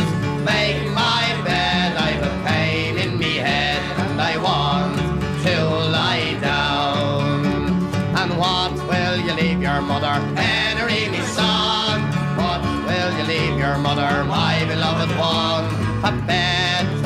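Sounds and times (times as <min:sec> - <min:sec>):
folk melody line: 0:00.0 - 0:17.0
plucked strings: 0:00.0 - 0:17.0.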